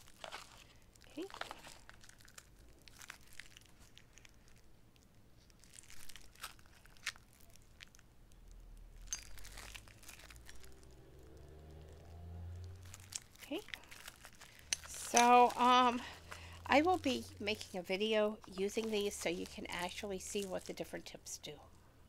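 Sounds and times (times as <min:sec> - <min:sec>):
packaging rustling and crinkling: 0:00.0 - 0:21.1
metal piping tips clicking: 0:14.6 - 0:15.8.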